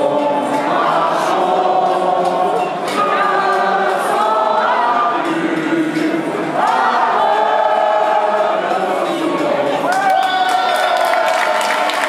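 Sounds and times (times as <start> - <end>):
crowd singing in unison: 0.0 - 12.0.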